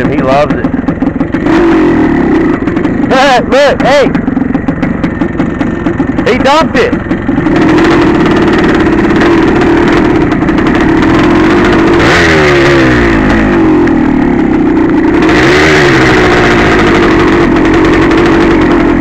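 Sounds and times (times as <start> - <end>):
two-stroke dirt bike engine: 0.0 - 19.0.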